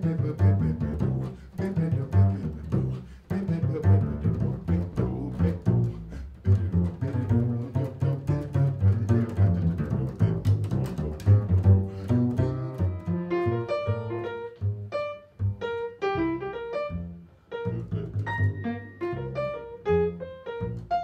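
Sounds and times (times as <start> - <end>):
plucked double bass: 0.0 - 21.0.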